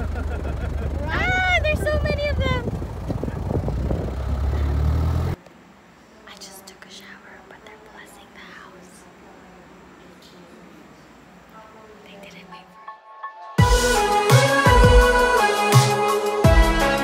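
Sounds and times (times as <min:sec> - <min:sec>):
woman laughing: 0:00.0 - 0:02.6
vehicle driving rumble: 0:00.0 - 0:05.4
faint whispering: 0:06.1 - 0:09.3, 0:11.8 - 0:12.8.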